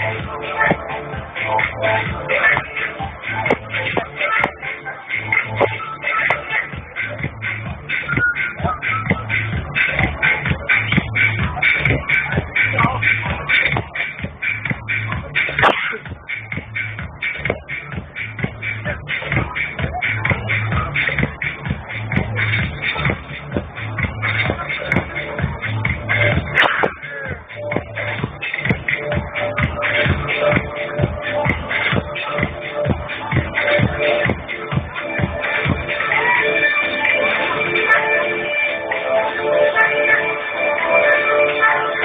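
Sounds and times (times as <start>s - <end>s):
muffled techno music: 0.0s - 42.0s
kick drum: 0.2s - 4.6s, 5.6s - 35.9s.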